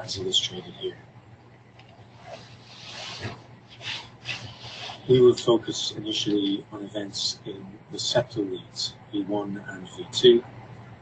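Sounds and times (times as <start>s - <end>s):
rubbing hissing strokes: 2.2s - 5.4s.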